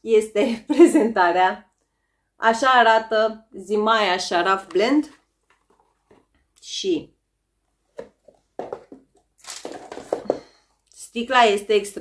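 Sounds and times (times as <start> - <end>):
cardboard rustling and scraping: 5.0 - 6.4, 7.9 - 10.4.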